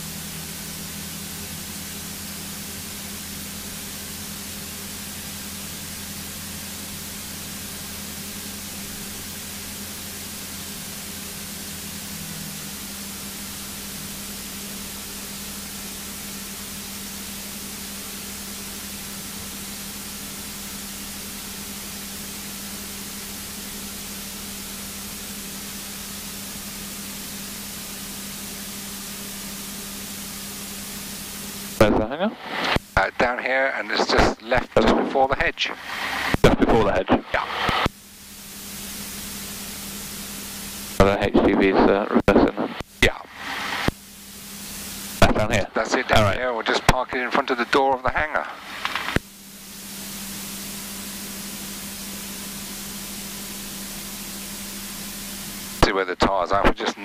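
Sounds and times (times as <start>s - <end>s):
light aircraft engine running: 0.0s - 57.0s.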